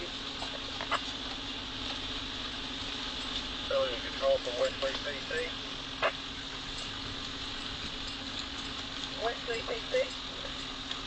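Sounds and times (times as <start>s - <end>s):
vehicle engine droning: 0.0s - 11.0s.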